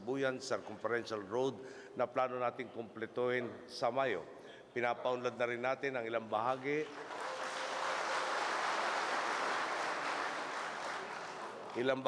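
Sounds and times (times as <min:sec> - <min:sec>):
audience applauding: 0:06.5 - 0:12.0.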